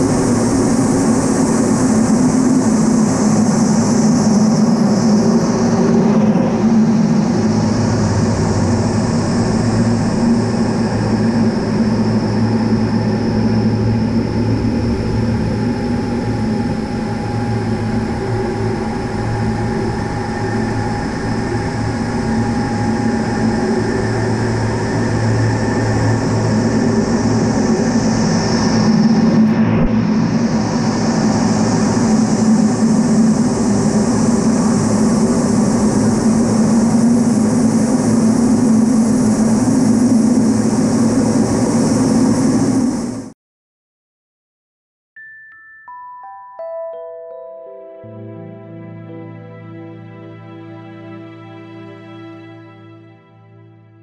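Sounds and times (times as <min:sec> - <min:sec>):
rush of airflow: 0:00.0 - 0:43.3
jet engine whine: 0:00.0 - 0:43.4.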